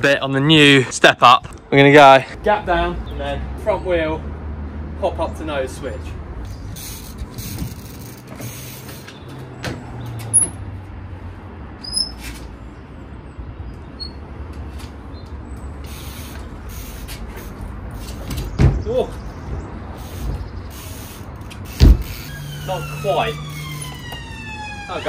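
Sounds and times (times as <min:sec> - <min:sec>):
road traffic rumble: 0:00.0 - 0:25.0.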